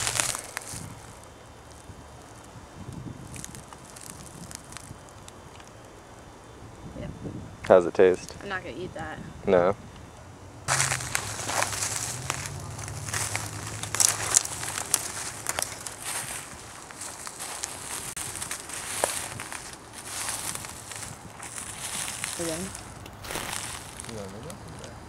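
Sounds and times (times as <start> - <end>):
rustling and crackling dry leaves: 0.0 - 6.2, 10.7 - 25.0.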